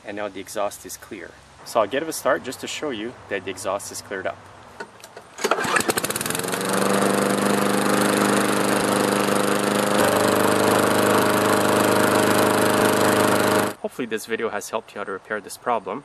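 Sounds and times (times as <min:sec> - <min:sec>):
lawn mower engine: 0:04.8 - 0:13.8.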